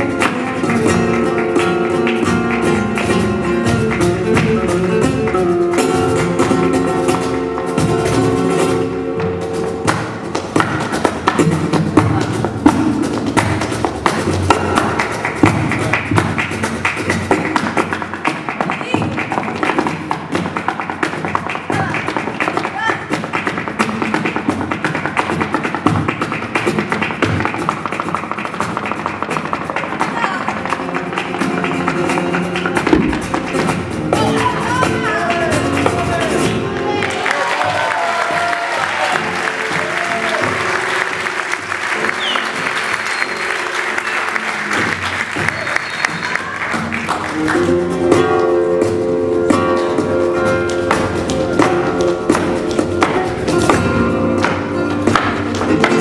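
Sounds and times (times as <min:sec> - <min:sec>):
dancer's feet tapping on stage: 0:00.0 - 0:56.0
flamenco guitar music: 0:00.0 - 0:56.0.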